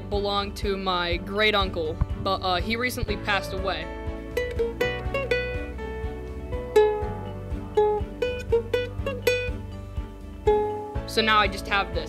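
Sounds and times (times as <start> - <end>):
ukulele picking slow melody: 4.2 - 9.6, 10.4 - 11.0.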